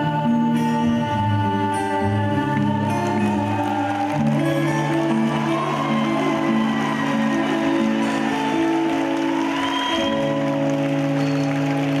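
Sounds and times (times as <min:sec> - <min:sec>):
live band sustained chords: 0:00.0 - 0:12.0
audience applause: 0:02.6 - 0:12.0.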